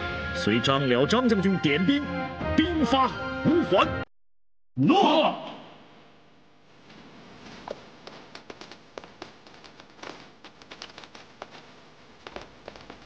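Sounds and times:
footsteps on stone floor: 6.9s - 13.0s.

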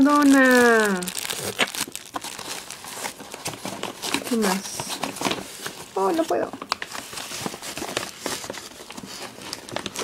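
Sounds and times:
packaging crinkling and rustling: 0.0s - 10.0s.

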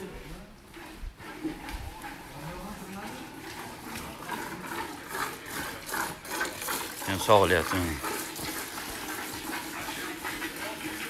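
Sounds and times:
milk squirting into metal pail: 0.7s - 11.0s.

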